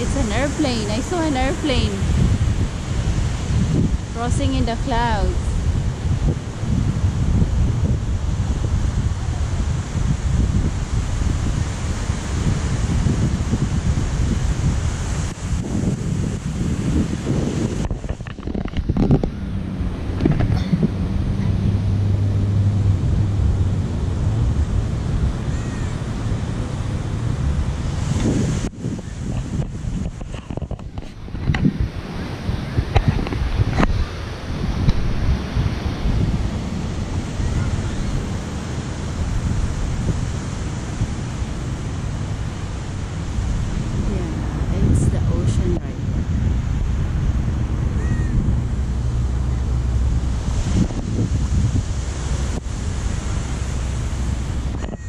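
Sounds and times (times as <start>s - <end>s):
ocean surf rushing: 0.0s - 55.0s
wind buffeting microphone: 0.0s - 55.0s.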